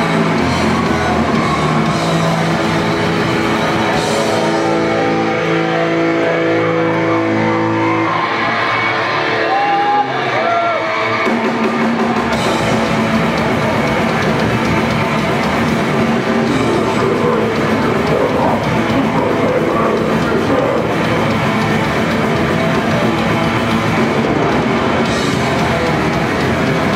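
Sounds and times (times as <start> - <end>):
fast dense drumming: 0.0 - 5.0, 11.3 - 26.9
distorted guitars: 0.0 - 26.9.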